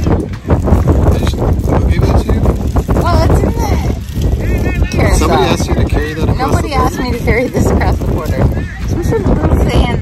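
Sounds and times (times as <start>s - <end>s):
wind rumble on microphone: 0.0s - 10.0s
people talking: 1.1s - 10.0s.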